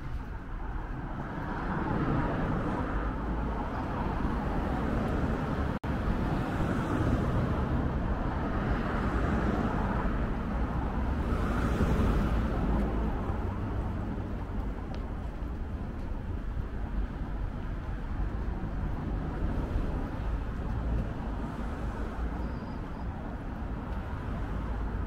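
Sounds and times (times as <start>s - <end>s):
road traffic rumble: 0.0s - 25.0s
tyre noise from passing cars: 0.0s - 25.0s.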